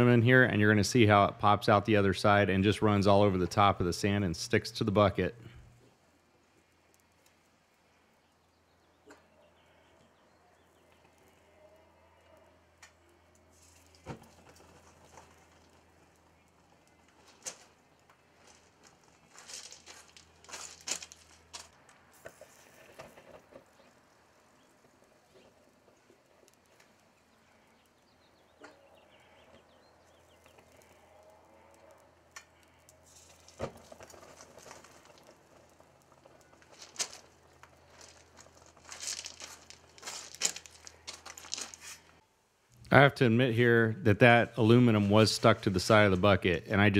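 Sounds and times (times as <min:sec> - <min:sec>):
crackling and popping of burning foam: 0:00.8 - 0:43.0.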